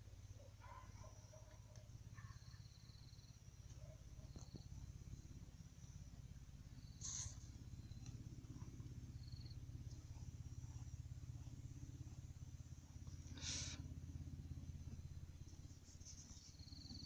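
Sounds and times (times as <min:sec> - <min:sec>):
low steady rumble: 0:00.0 - 0:17.0
insects chirping in high trills: 0:02.1 - 0:17.0.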